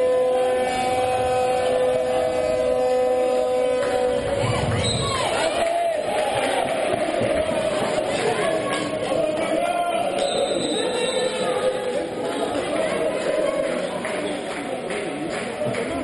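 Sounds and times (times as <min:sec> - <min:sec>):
spectators chanting and shouting: 0:00.0 - 0:16.0.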